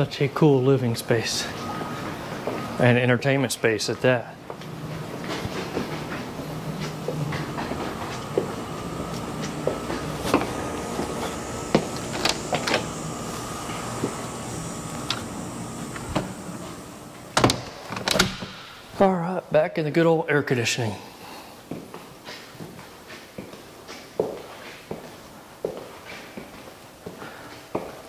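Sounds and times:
outdoor background hum: 0:00.0 - 0:28.0
house door opening and shutting: 0:05.2 - 0:19.0.

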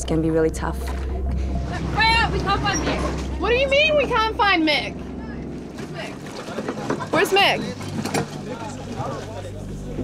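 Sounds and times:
sea noise: 0:00.9 - 0:10.0.

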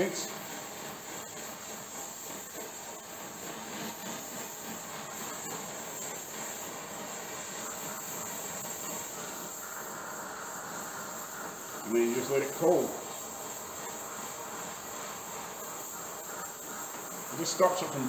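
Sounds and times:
torch flame hissing: 0:00.0 - 0:18.0.

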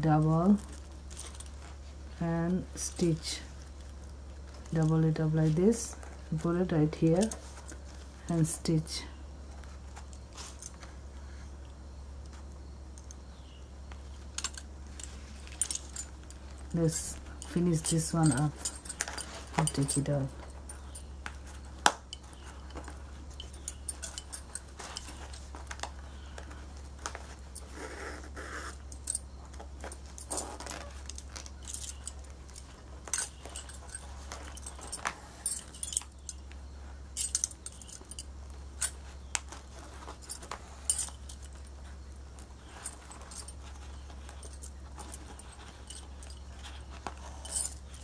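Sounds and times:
steady low hum: 0:00.0 - 0:48.0
bangles clinking and jingling: 0:00.2 - 0:11.0, 0:11.6 - 0:48.0.

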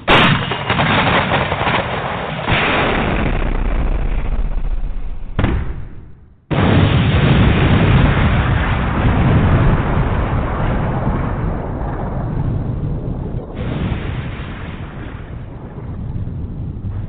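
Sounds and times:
explosion blasts rumbling: 0:00.0 - 0:17.0.

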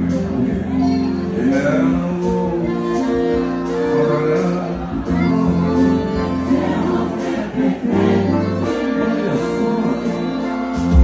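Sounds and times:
live band music: 0:00.0 - 0:11.0
person singing: 0:00.0 - 0:11.0.

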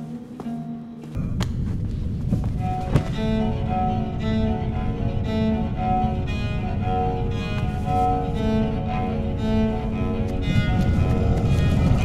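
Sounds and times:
steady low rumble: 0:01.2 - 0:12.0.

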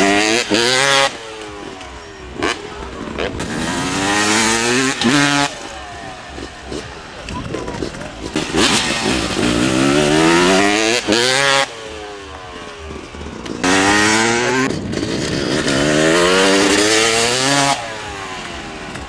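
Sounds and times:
motocross bike engines revving: 0:00.0 - 0:19.0.

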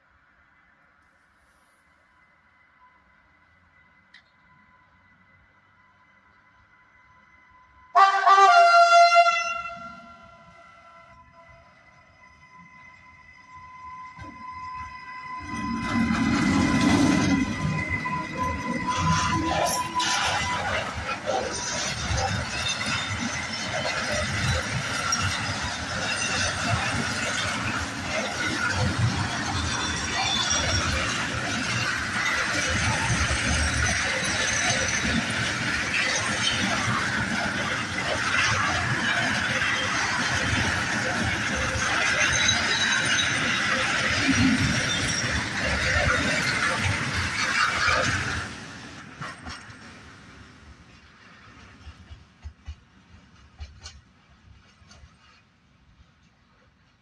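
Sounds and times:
rumble of wheels on rail: 0:00.0 - 0:57.0
train wheels squealing: 0:10.4 - 0:50.5.

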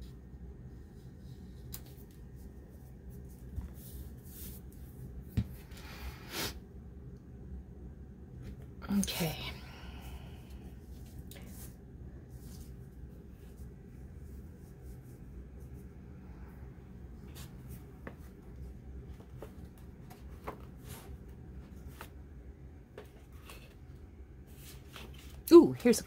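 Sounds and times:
low steady hum: 0:00.0 - 0:26.0
paper pages rustling: 0:19.1 - 0:22.2, 0:23.0 - 0:23.8, 0:24.5 - 0:25.4.

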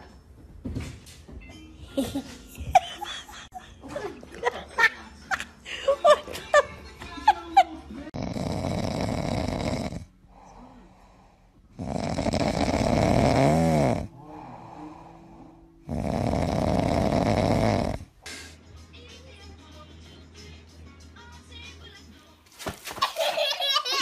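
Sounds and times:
dog snoring loudly: 0:08.2 - 0:10.2, 0:11.7 - 0:14.6, 0:15.8 - 0:18.2.

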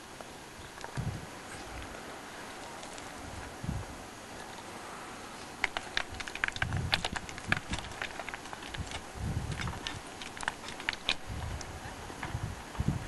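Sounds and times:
sharp clicks and clatters: 0:05.6 - 0:11.7.

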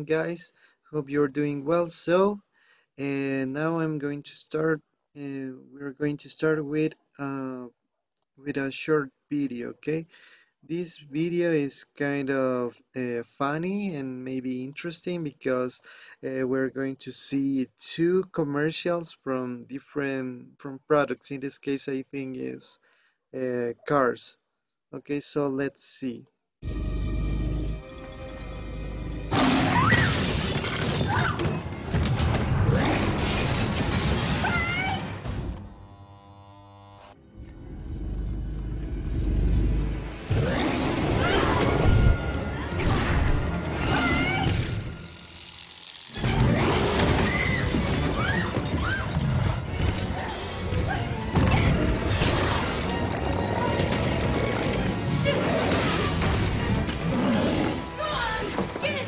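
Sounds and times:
monster roar: 0:26.6 - 0:27.9, 0:37.4 - 0:43.1, 0:53.4 - 0:57.9
soundtrack music: 0:26.6 - 0:29.8, 0:39.7 - 0:45.4, 0:49.1 - 0:59.0
loud crash with shattering: 0:29.3 - 0:34.4.

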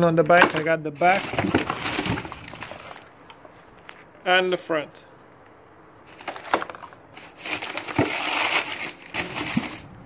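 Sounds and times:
plastic packaging crinkling: 0:00.3 - 0:03.2, 0:06.1 - 0:10.0.

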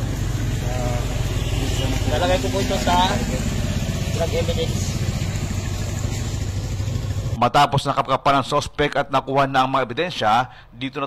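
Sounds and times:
engine idling: 0:00.0 - 0:07.4.

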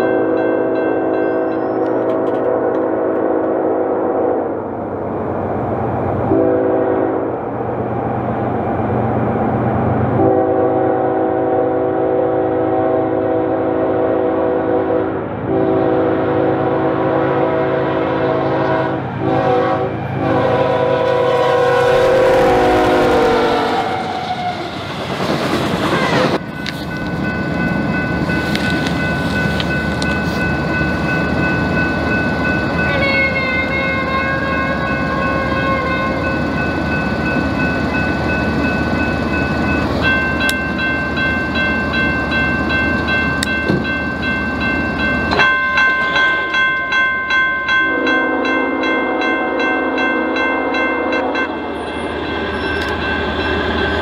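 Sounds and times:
crossing bell ringing: 0:00.0 - 0:03.7, 0:25.9 - 0:54.0
train rumble and clickety-clack: 0:00.0 - 0:54.0
diesel locomotive horn: 0:01.7 - 0:04.7, 0:06.3 - 0:07.4, 0:10.1 - 0:24.8, 0:32.8 - 0:36.4, 0:47.9 - 0:51.5.

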